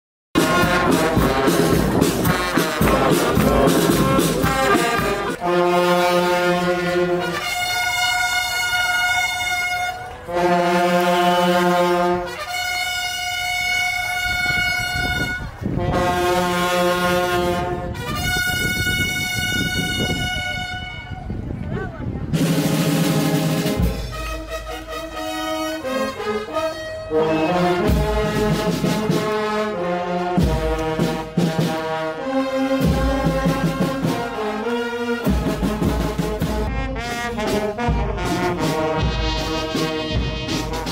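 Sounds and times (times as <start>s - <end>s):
brass band playing held chords: 0.3s - 21.4s, 22.3s - 40.9s.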